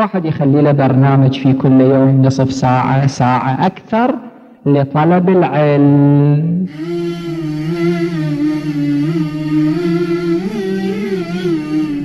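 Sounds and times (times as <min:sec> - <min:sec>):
slow music with gliding notes: 0:06.7 - 0:12.0.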